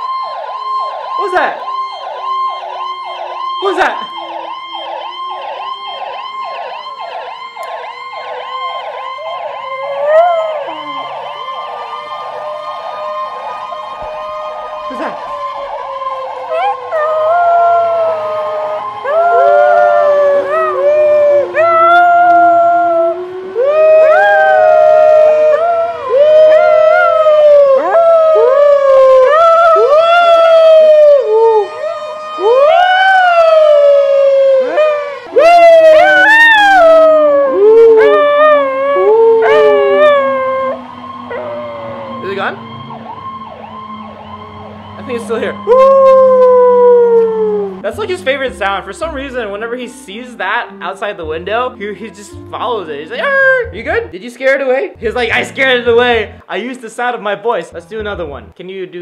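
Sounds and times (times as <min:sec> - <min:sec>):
ambulance siren: 0:00.0 - 0:54.1, 0:55.0 - 0:56.5
swooping howls: 0:08.2 - 0:47.8.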